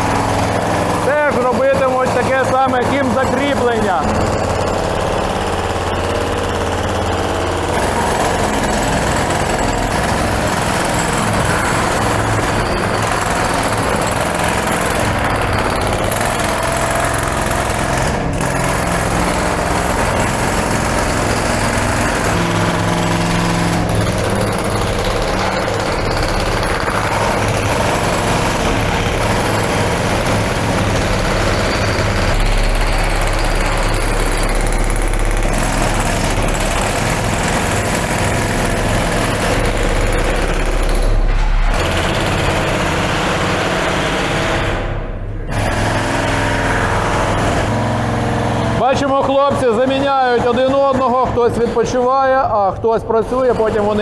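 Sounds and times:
jackhammers breaking concrete: 0.0s - 54.0s.

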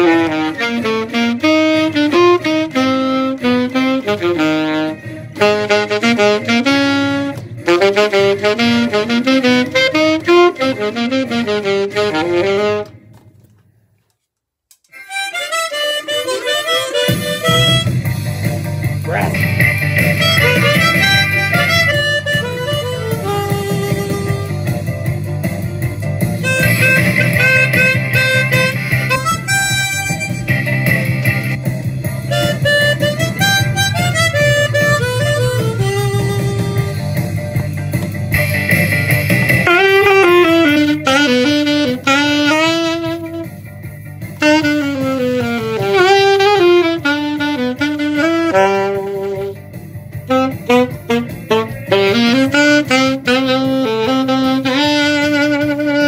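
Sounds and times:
harmonica playing: 0.0s - 12.9s, 14.9s - 18.2s, 19.1s - 24.8s, 26.4s - 37.3s, 38.4s - 43.6s, 44.4s - 49.6s, 50.2s - 56.0s
saxophone melody: 0.0s - 13.2s, 14.9s - 56.0s
blues band backing track: 0.0s - 13.6s, 14.8s - 56.0s.

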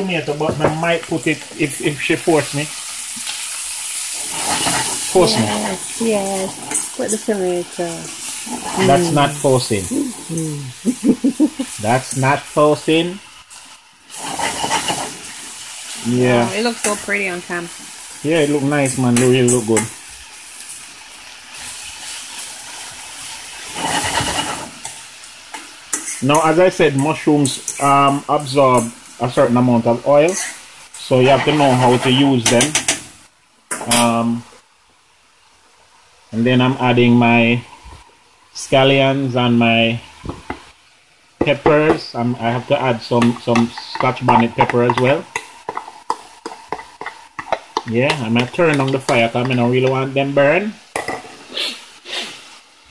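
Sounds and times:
food sizzling in a frying pan: 0.0s - 52.9s
light clicks and taps on pan: 43.2s - 50.0s.

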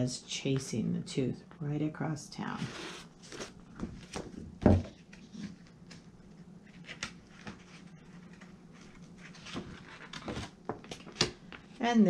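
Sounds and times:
paper rustling: 2.6s - 11.8s.

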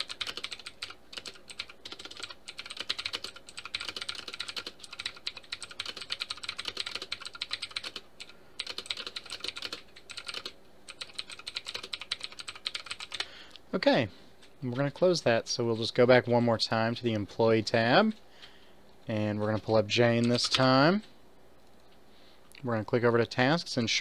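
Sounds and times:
typing on computer keyboard: 0.0s - 13.3s, 20.2s - 20.7s.

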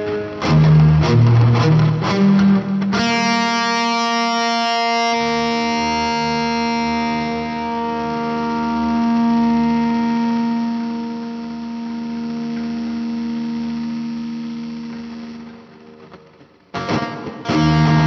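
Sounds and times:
distorted electric guitar: 0.0s - 18.0s.

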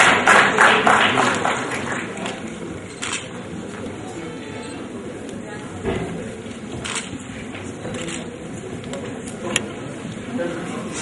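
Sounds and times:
audience applauding: 0.0s - 2.4s.

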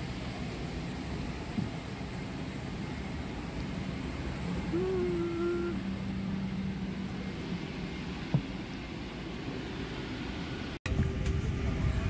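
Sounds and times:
cabin ventilation air rushing: 0.0s - 12.0s
higher hum: 1.4s - 9.6s.

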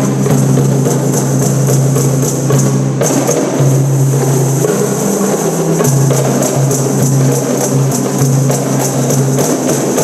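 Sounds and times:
frame drums played by hand: 0.0s - 10.0s.

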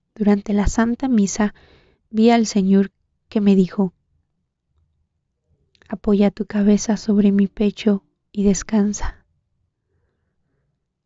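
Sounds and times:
person reading aloud: 0.2s - 1.5s, 2.2s - 3.9s, 5.9s - 9.2s.

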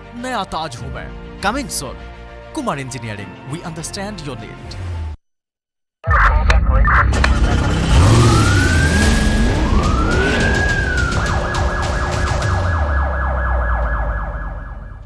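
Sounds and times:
police siren wailing: 7.9s - 15.0s.

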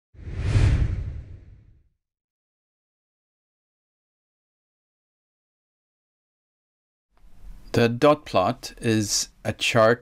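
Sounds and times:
whoosh sound effect: 0.2s - 1.8s.

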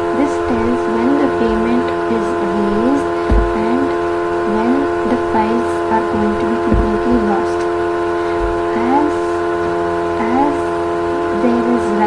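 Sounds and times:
droning chord: 0.0s - 12.0s.

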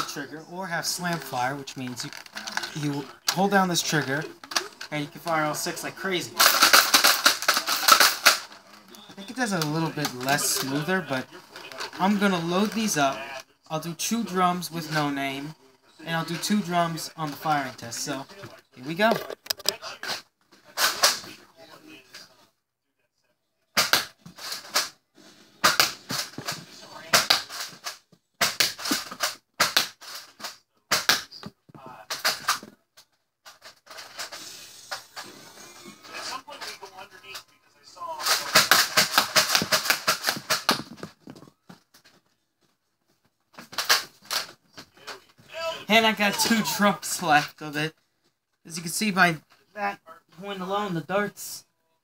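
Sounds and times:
toy blaster pumping clacks: 6.4s - 8.5s.

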